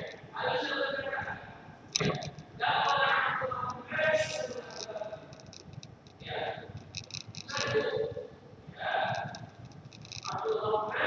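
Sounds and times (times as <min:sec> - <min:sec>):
light clicks: 0:04.2 - 0:07.8.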